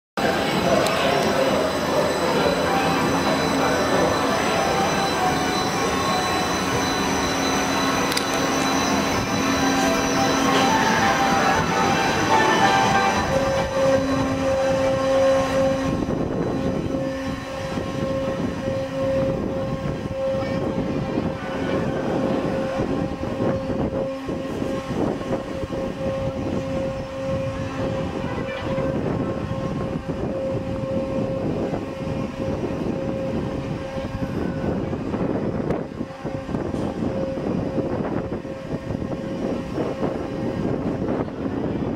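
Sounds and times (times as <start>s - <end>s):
ride machinery rumble: 0.2s - 41.9s
ride machinery whining: 0.2s - 41.9s.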